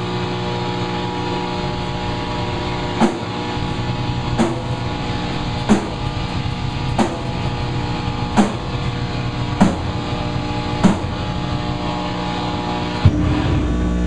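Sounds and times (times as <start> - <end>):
amplifier hum: 0.0 - 14.0
drum and cymbal hits: 0.0 - 14.0
band playing heavy riff: 1.1 - 14.0.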